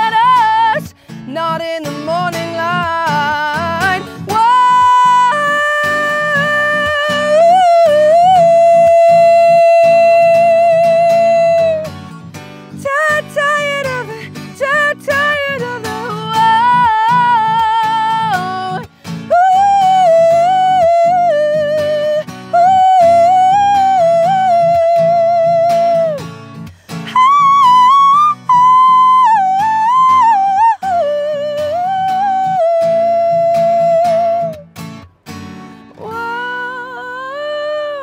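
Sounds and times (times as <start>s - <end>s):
woman singing: 0.0s - 26.3s, 26.9s - 34.7s, 35.8s - 38.0s
acoustic guitar: 0.0s - 38.0s.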